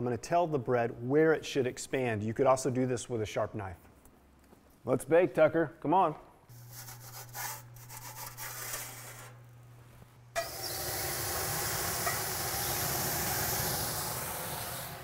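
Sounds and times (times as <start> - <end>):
loud hiss of steam: 10.4 - 15.0.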